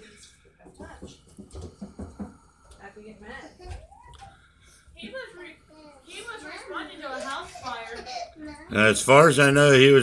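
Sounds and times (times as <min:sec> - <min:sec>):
faint voices talking quietly: 0:05.0 - 0:10.0.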